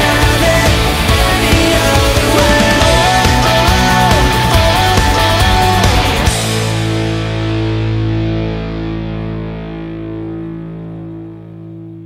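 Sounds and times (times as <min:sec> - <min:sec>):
distorted electric guitar chord ringing: 0:00.0 - 0:12.0.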